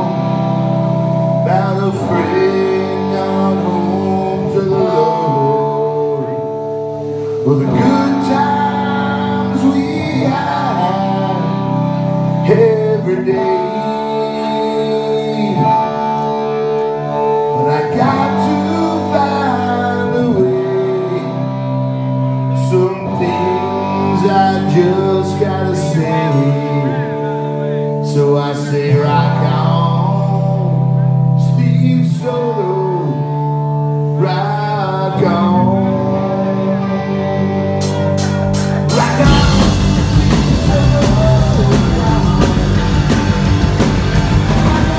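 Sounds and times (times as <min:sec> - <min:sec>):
electric guitars and bass chords: 0:00.0 - 0:44.9
man singing: 0:01.3 - 0:44.9
drums crashing: 0:37.8 - 0:44.9.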